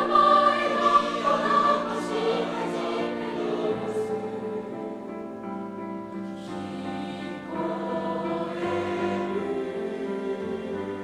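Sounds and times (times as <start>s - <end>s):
choir singing held chords: 0.0s - 5.7s, 6.3s - 11.0s
piano accompaniment: 0.0s - 11.0s.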